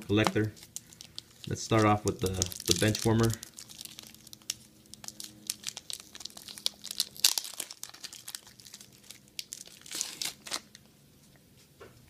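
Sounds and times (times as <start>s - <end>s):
plastic bag crinkling: 0.1s - 10.9s.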